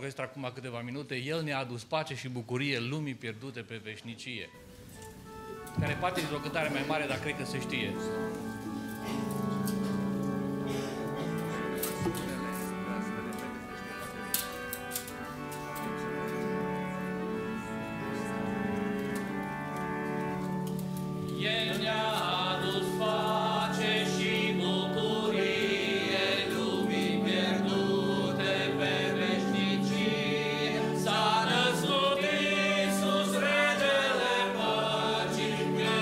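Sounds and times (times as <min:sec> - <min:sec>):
congregation and choir singing hymn: 0:05.6 - 0:36.0.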